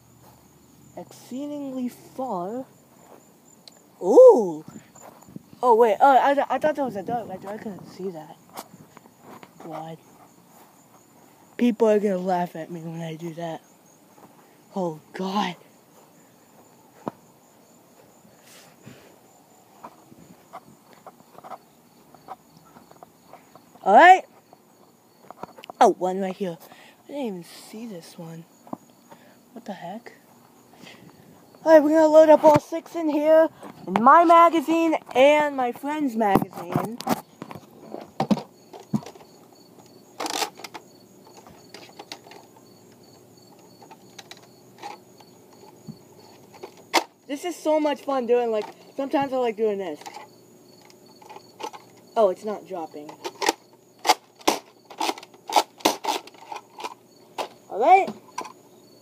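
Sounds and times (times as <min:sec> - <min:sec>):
insects trilling: 0:00.0 - 0:59.0
rustling clatter: 0:53.1 - 0:57.6.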